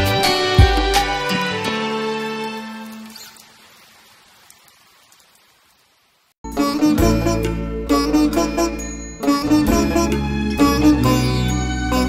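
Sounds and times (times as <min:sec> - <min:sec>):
slow music: 0:00.0 - 0:03.0, 0:06.4 - 0:12.0.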